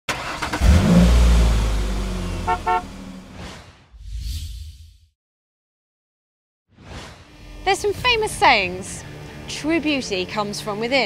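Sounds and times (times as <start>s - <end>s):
car engine rumble and road noise: 0.1s - 3.4s
car horn toots: 2.3s - 3.2s.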